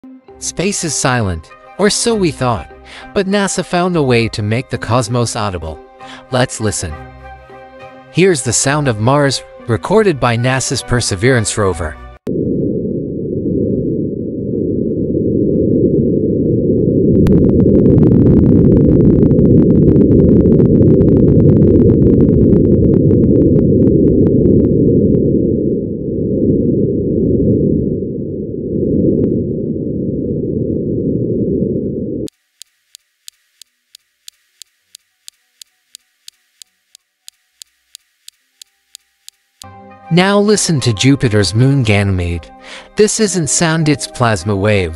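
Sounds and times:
muffled wind rush: 0:12.2 - 0:32.3
faint clicks: 0:32.3 - 0:39.7
regular high ticks: 0:32.3 - 0:39.8.

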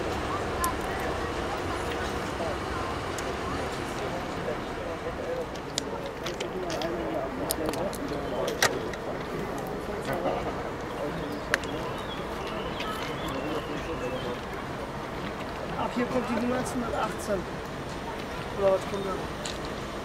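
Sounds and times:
steady low rumble: 0:00.0 - 0:08.2
indistinct chatter: 0:00.0 - 0:20.0.

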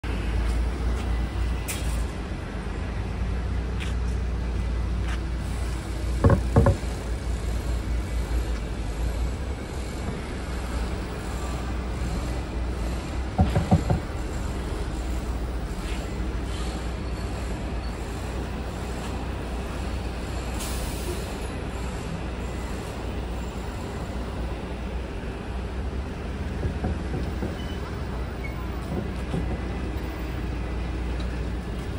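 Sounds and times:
traffic rumble: 0:00.0 - 0:31.9.

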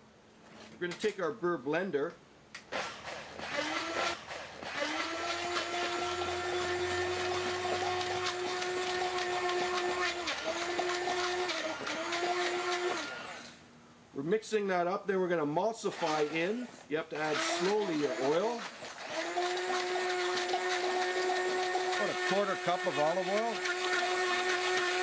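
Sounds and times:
immersion blender motor whine: 0:02.8 - 0:13.6, 0:15.9 - 0:25.0.

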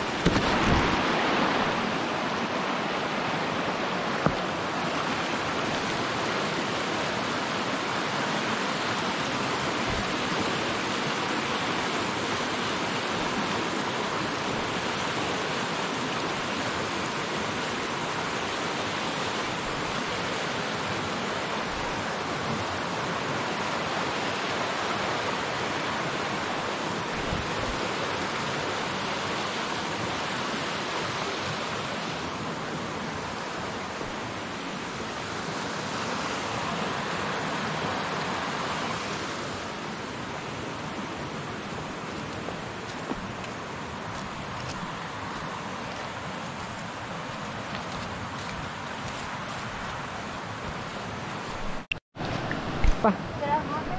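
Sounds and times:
stream rushing over rocks: 0:00.0 - 0:53.9.

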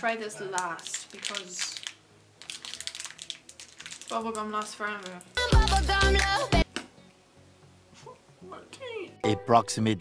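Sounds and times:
sweet wrapper crinkling: 0:00.5 - 0:06.4.

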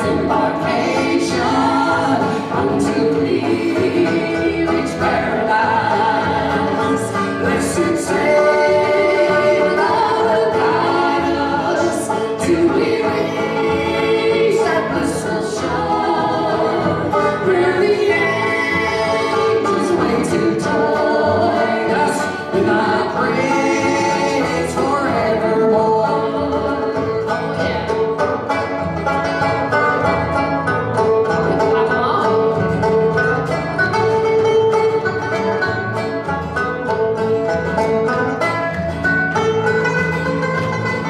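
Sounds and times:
voices singing in harmony: 0:00.0 - 0:28.2
acoustic guitar: 0:00.0 - 0:41.0
banjo: 0:00.0 - 0:41.0.

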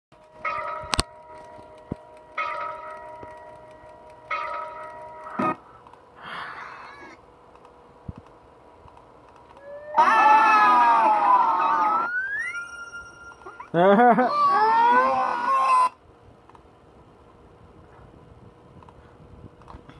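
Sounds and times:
sharp clicks: 0:00.2 - 0:06.0, 0:07.5 - 0:09.7.

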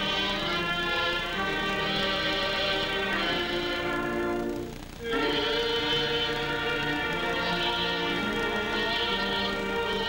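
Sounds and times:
choir holding long chords: 0:00.0 - 0:10.0.

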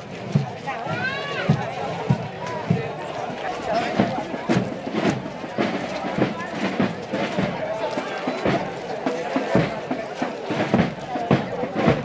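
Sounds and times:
drum beating marching pulse: 0:00.0 - 0:12.0
people talking: 0:00.0 - 0:12.0.

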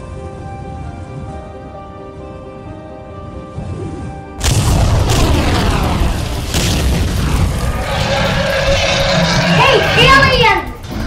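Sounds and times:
cinematic boom: 0:04.4 - 0:09.5
deep rumble with falling sweeps: 0:04.4 - 0:11.0.

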